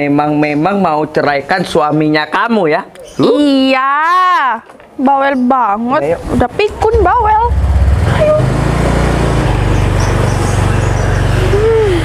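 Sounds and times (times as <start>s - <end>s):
scooter engine running: 6.7s - 12.0s.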